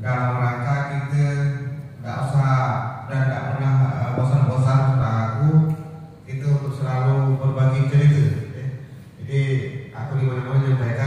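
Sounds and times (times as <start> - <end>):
man speaking into microphone: 0.0 - 11.0.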